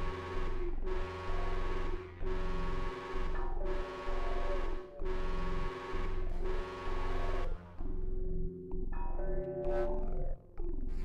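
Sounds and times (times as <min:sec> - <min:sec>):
synthesizer drone chord: 0:00.0 - 0:10.4.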